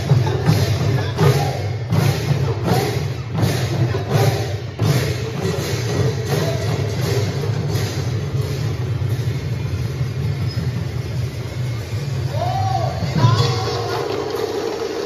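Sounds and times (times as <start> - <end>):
ensemble of drums playing: 0.0 - 15.0.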